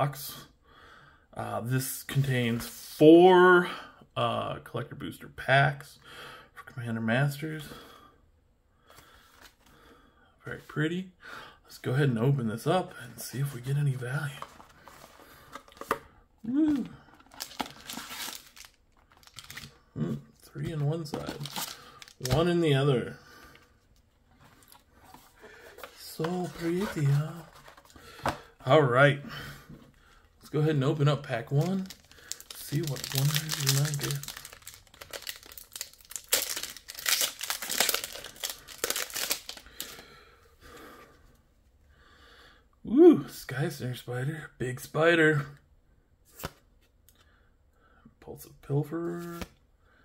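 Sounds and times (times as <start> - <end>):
cards rustling: 13.1 - 19.8, 20.4 - 28.8, 30.5 - 40.0
foil wrappers crinkling: 16.7 - 19.7, 21.1 - 22.5, 31.4 - 40.0.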